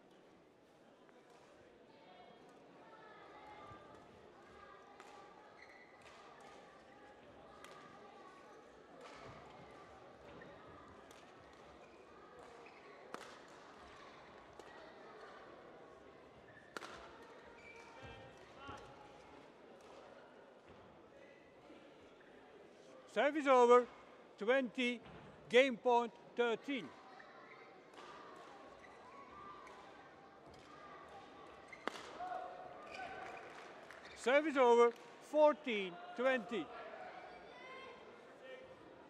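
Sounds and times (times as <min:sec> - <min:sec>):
rackets striking shuttlecock: 0:31.8 - 0:32.2.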